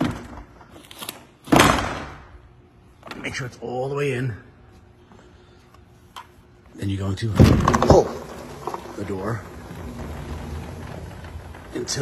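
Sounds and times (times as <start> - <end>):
glass door sliding along track: 7.2 - 12.0.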